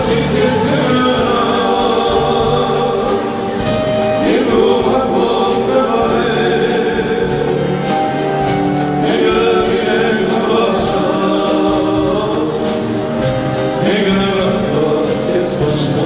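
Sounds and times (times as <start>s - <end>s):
man singing into microphone: 0.0s - 3.3s, 13.8s - 16.0s
live band playing: 0.0s - 16.0s.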